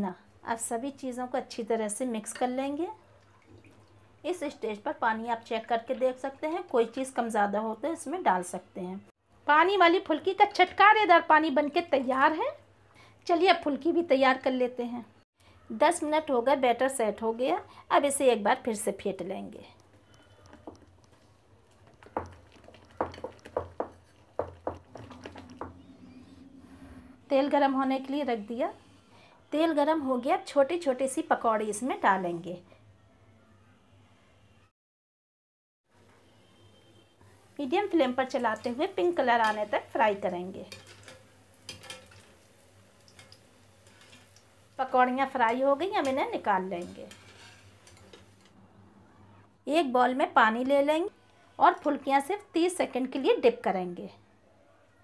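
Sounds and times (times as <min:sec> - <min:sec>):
hot oil sizzling in pan: 0:37.4 - 0:48.5.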